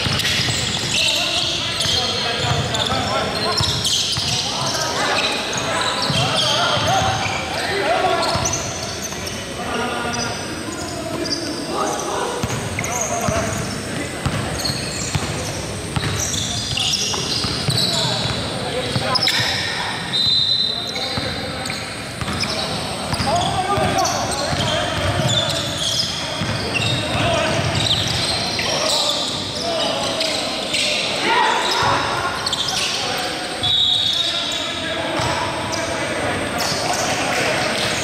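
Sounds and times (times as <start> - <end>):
sneakers squeaking: 0.0 - 38.0.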